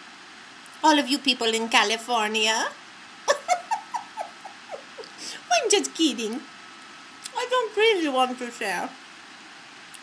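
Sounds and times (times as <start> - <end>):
woman giggling: 3.3 - 5.3.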